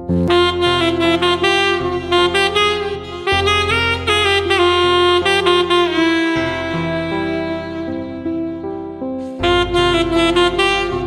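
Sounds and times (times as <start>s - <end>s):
backing track with low bass: 0.0s - 11.0s
alto saxophones playing melody: 0.1s - 11.0s.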